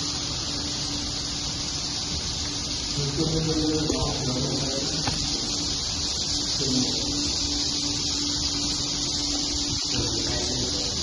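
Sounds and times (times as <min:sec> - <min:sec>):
swiftlets twittering: 0:00.0 - 0:11.0.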